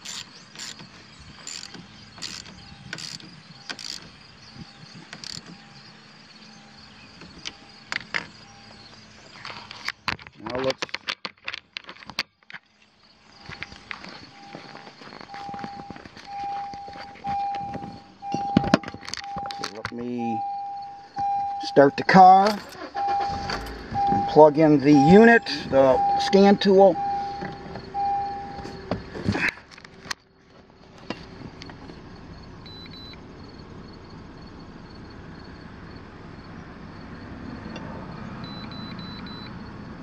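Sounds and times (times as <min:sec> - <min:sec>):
ratchet wrench clicking: 0:00.0 - 0:00.8, 0:01.4 - 0:04.1, 0:05.2 - 0:05.5
repeating electronic beep: 0:14.3 - 0:28.8
tool clattering down: 0:18.2 - 0:20.0.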